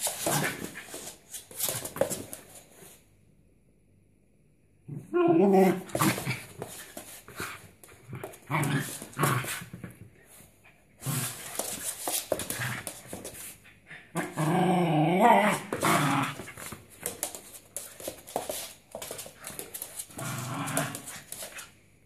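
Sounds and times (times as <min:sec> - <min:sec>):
dog growling and whining: 0:04.9 - 0:06.4, 0:14.1 - 0:16.5.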